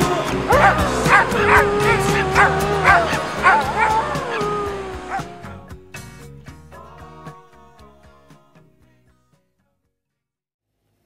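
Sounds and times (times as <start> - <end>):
background music: 0.0 - 9.8
dog yipping and whining: 0.5 - 5.5.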